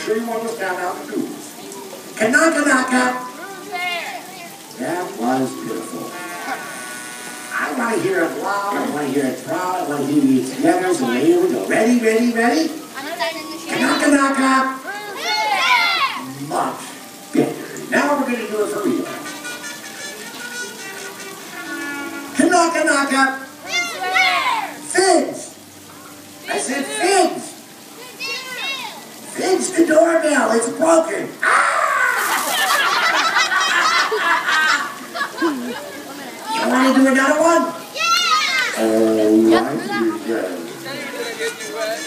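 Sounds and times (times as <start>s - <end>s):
fountain spewing water: 0.0s - 42.0s
sing-song calling voices: 0.8s - 29.4s, 31.3s - 42.0s
children calling out: 3.3s - 4.8s, 12.9s - 16.3s, 23.4s - 24.9s, 27.9s - 29.2s, 31.4s - 42.0s
children shrieking with laughter: 6.0s - 7.0s, 14.8s - 16.3s, 23.6s - 24.8s, 31.4s - 37.0s, 37.9s - 38.8s.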